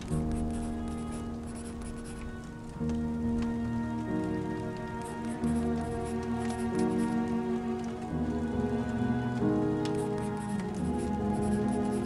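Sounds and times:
rain pattering: 0.0s - 12.0s
soft instrumental music: 0.0s - 12.0s.

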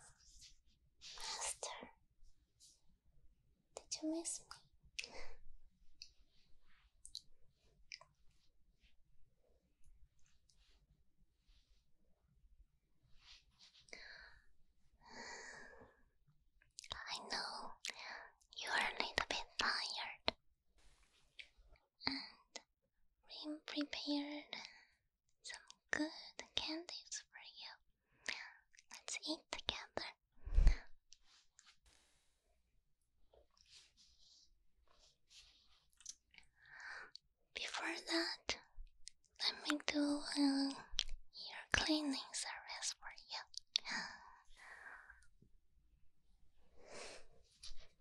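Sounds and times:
woman whispering: 1.0s - 2.0s, 3.7s - 5.4s, 16.8s - 20.4s, 22.0s - 22.7s, 23.3s - 24.7s, 25.4s - 30.9s, 36.8s - 38.8s, 39.4s - 45.2s.

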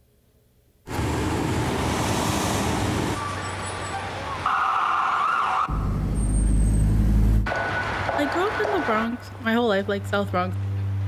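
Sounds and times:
vehicles passing: 0.9s - 11.0s.

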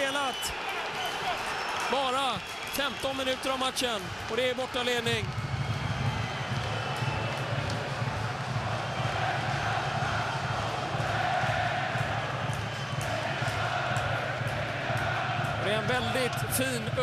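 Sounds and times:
crowd cheering: 0.0s - 17.0s
supporters chanting: 7.0s - 17.0s.

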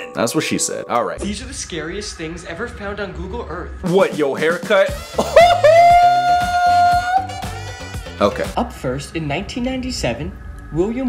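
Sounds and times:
background music with beat: 3.7s - 8.6s.

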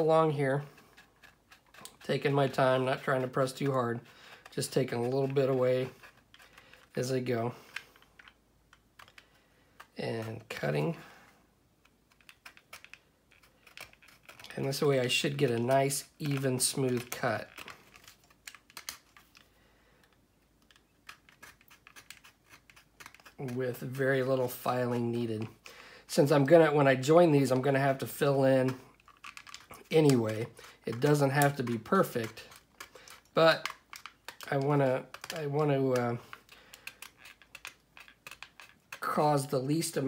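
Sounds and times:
hand saw scratching through plastic: 21.1s - 25.2s.

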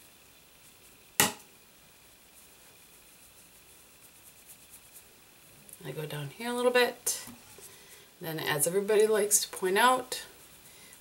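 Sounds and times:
powder brush swishing on skin: 0.0s - 1.1s, 2.2s - 11.0s
sharp tap: 1.2s - 1.5s.

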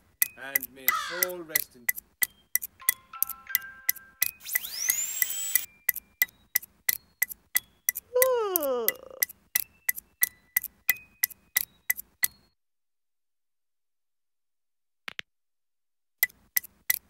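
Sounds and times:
knitting needles clicking: 0.0s - 12.4s, 16.2s - 17.0s
woman yawning: 8.1s - 9.2s.

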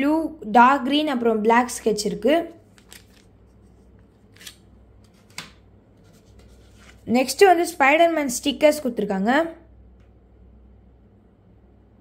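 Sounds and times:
plastic wrapper crinkling: 2.6s - 3.5s.

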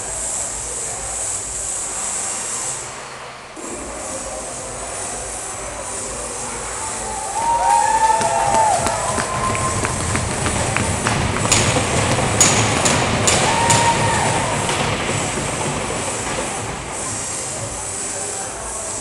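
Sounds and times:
echoing ice arena rumble: 0.0s - 19.0s
gliding pitched tones: 0.0s - 19.0s.

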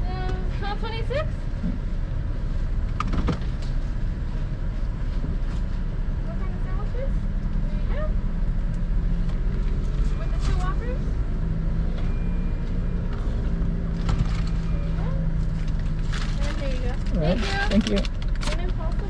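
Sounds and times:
vehicle idling hum: 0.0s - 19.0s.

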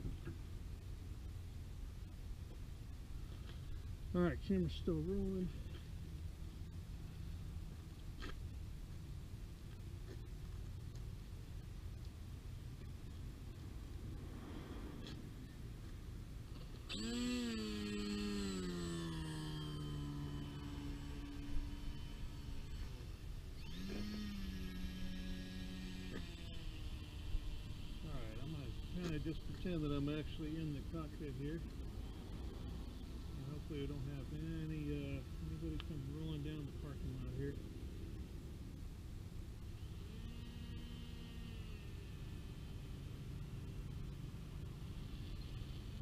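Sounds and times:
electric motor and propeller whine: 0.0s - 46.0s.

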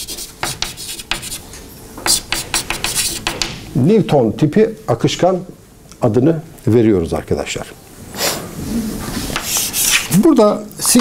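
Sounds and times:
chalk scraping on blackboard: 0.0s - 1.4s, 2.0s - 3.6s, 9.3s - 10.2s.

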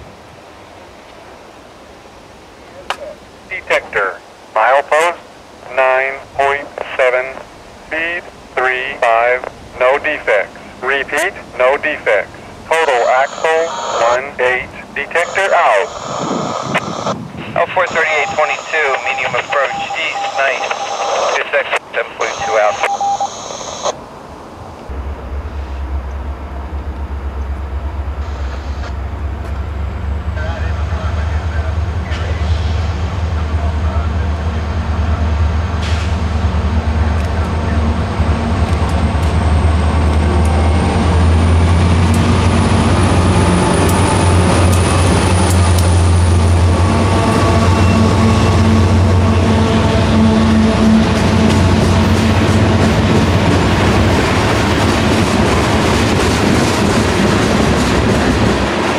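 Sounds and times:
diesel locomotive engine drone: 3.5s - 58.9s
train wheels on rails: 35.7s - 58.9s.

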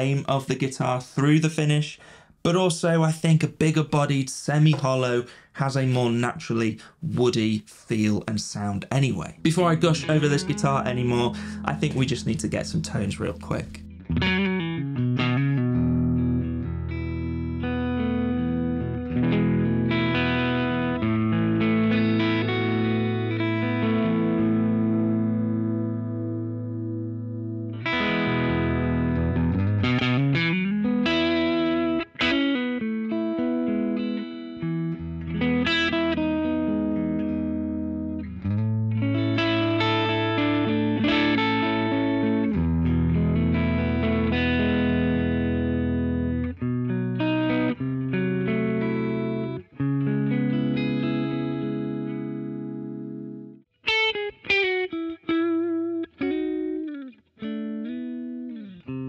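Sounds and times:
choppy guitar stabs: 4.5s - 6.2s, 8.9s - 59.0s
electric guitar strumming chords: 9.4s - 59.0s.

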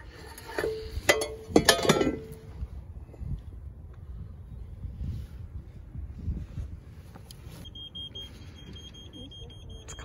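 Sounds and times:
wind buffeting microphone: 0.8s - 7.6s.

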